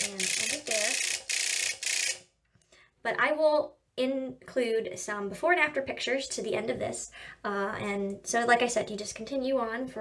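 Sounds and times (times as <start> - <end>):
electric pen high-pitched buzz: 0.0 - 2.3.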